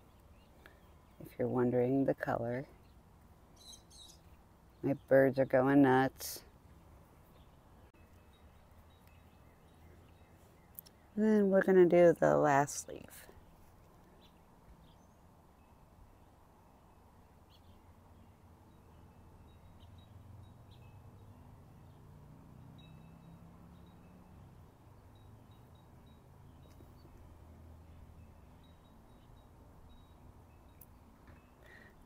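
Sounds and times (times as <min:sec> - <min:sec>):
birds chirping: 0:00.0 - 0:32.0.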